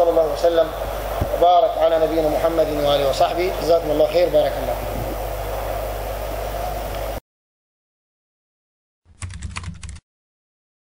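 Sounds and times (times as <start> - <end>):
keyboard typing clicks: 9.1 - 10.0.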